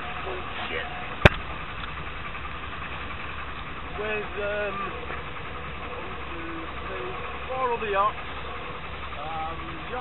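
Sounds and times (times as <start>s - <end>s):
outboard motor running: 0.0s - 10.0s
wind: 0.0s - 10.0s.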